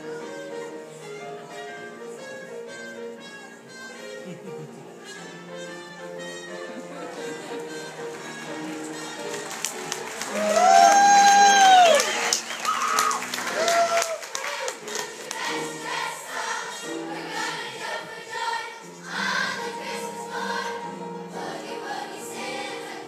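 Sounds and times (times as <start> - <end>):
boogie-woogie accompaniment: 0.0 - 11.5
children's chorus singing: 14.2 - 23.0.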